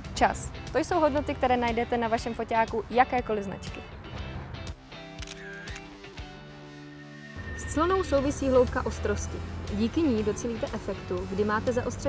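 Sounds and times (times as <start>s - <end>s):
background music: 0.0s - 12.0s
camera shutter clicks: 5.2s - 5.9s.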